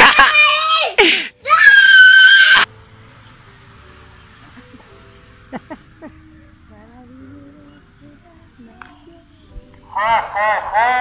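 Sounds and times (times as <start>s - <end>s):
girl screaming: 0.0s - 2.7s.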